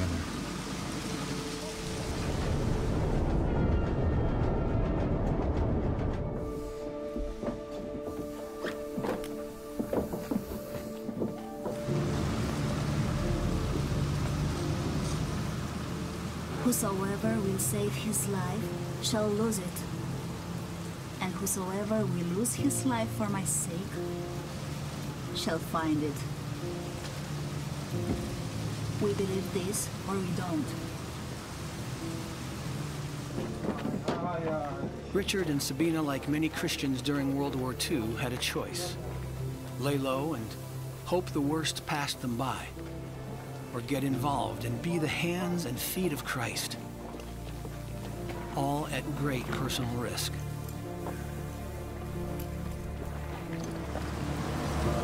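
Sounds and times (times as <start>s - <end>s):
rain on a car roof: 0.0s - 3.7s, 5.1s - 55.0s
low rumble: 0.0s - 7.4s
low sustained music score: 0.0s - 55.0s.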